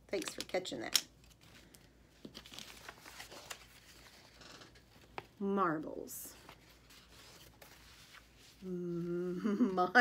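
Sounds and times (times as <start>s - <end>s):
paper sheets rustling: 1.2s - 8.6s.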